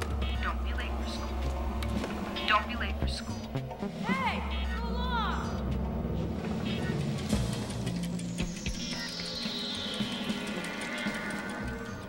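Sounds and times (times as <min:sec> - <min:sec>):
droning synthesizer pad: 0:05.7 - 0:12.0.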